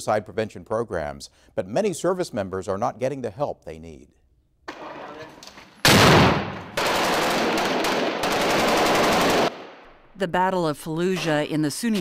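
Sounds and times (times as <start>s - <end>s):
automatic gunfire: 5.8s - 9.8s.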